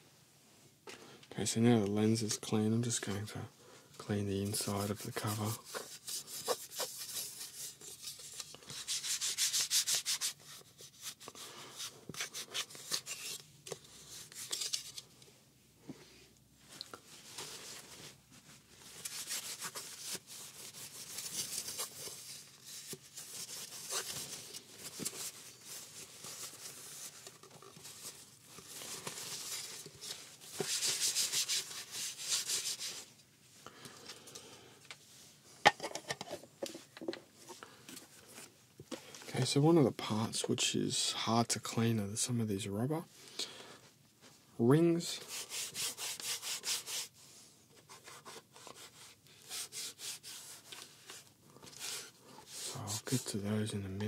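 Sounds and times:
rubbing on plastic cover: 0:04.1 - 0:13.4, 0:17.1 - 0:33.1, 0:45.2 - 0:47.2, 0:47.8 - 0:53.5.

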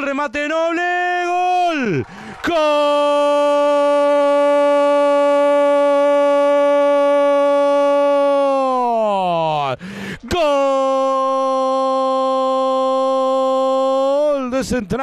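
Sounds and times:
commentator's long goal cry: 0:10.3 - 0:14.3.

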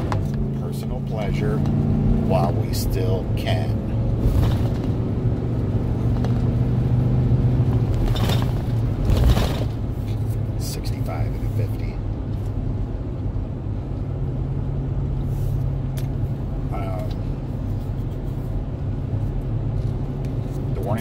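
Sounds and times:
car engine and road drone: 0:00.0 - 0:21.0.

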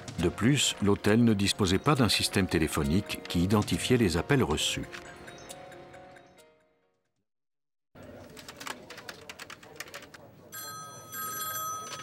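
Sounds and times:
computer keyboard typing: 0:08.2 - 0:10.2
desk telephone ringing: 0:10.5 - 0:12.0.

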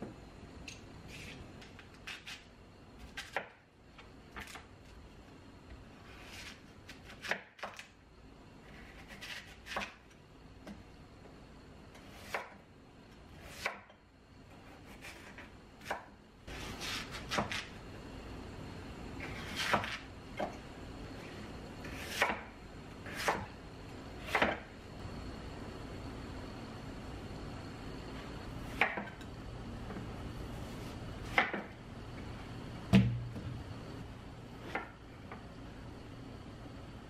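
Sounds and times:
knife chopping on wooden board: 0:16.8 - 0:17.7, 0:19.4 - 0:20.6, 0:21.9 - 0:22.5.

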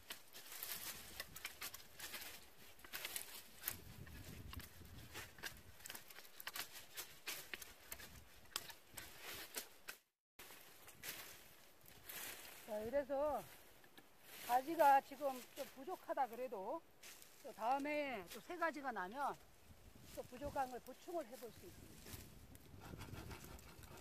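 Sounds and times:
dry branches crackling and rustling: 0:00.0 - 0:24.0
footsteps in dry grass: 0:00.0 - 0:24.0.

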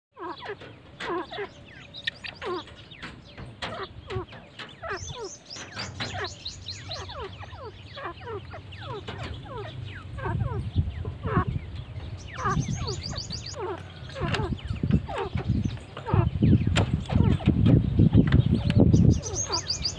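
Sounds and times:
birds chirping: 0:00.1 - 0:19.9.

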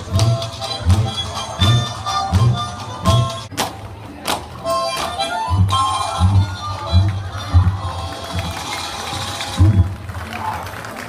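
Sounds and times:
deep drum beats: 0:00.0 - 0:03.5, 0:05.5 - 0:08.6, 0:09.4 - 0:10.2
harmonica folk melody: 0:00.0 - 0:03.5, 0:04.6 - 0:09.6.

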